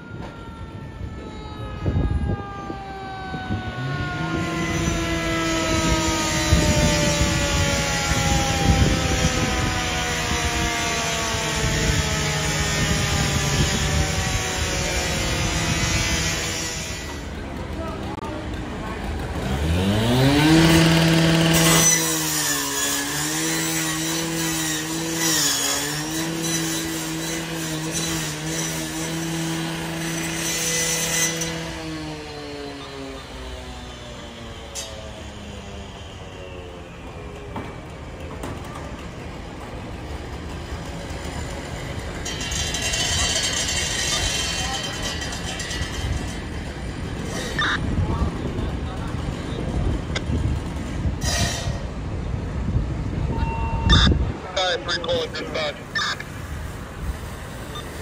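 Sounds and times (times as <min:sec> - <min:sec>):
falling drone: 0:00.0 - 0:17.4
small engine revving: 0:19.1 - 0:36.4, 0:47.2 - 0:47.8.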